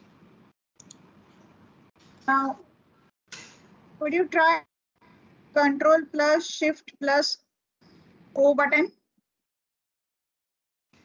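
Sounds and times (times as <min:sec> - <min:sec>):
faint clicks: 0:00.8 - 0:02.2.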